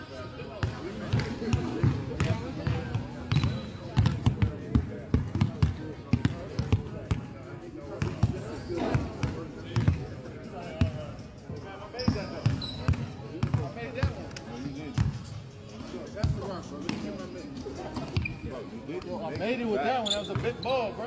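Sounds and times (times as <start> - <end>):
people talking: 0.0 - 21.0
basketball bouncing on court: 0.6 - 7.3, 8.0 - 10.1, 12.0 - 14.2.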